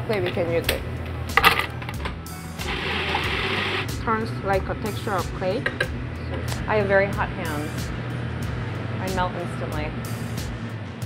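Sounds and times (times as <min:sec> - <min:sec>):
background music: 0:00.0 - 0:11.0
food processor motor whirring: 0:02.6 - 0:03.9.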